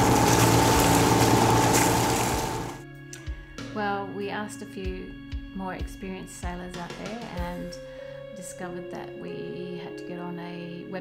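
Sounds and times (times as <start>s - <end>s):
inboard engine drone: 0.0s - 2.8s
water along the hull: 0.0s - 2.8s.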